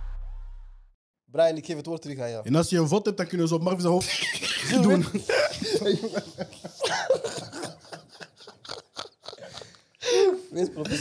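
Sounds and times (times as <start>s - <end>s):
laughter: 4.0s - 11.0s
man coughing: 6.8s - 7.8s.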